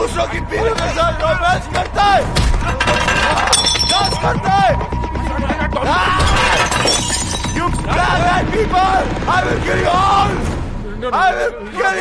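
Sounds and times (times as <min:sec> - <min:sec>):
glass shattering: 0:02.7 - 0:04.3, 0:06.2 - 0:07.8
men shouting: 0:07.7 - 0:12.0.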